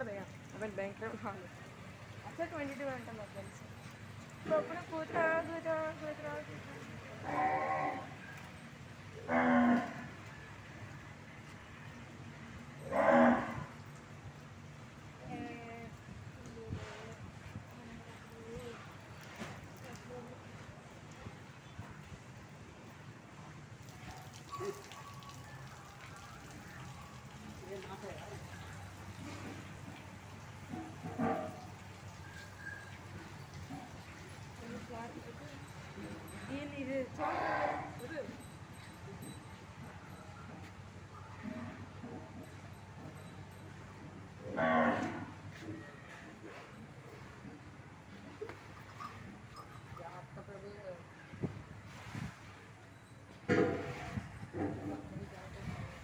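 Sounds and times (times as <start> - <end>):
cow mooing: 7.2 - 8.2, 9.2 - 10.2, 12.8 - 13.7, 37.2 - 38.0, 44.5 - 45.4.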